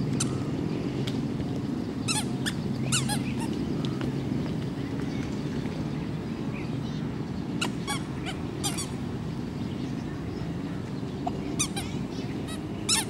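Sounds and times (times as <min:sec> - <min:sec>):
distant road traffic rumble: 0:00.0 - 0:13.0.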